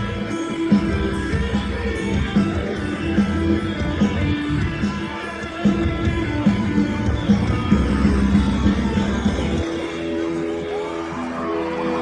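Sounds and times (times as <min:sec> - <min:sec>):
live rock band: 0:00.0 - 0:12.0
sustained guitar tones: 0:00.0 - 0:12.0.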